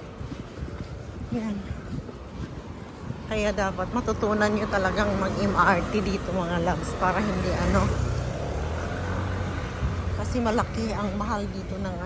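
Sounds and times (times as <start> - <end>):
street traffic rumble: 0.0 - 12.0
vehicle engine running close by: 3.9 - 12.0.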